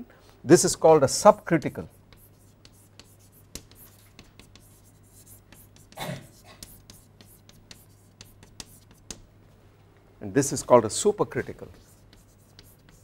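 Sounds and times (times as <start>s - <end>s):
chalk tapping and scratching: 1.2s - 9.3s, 11.3s - 13.0s.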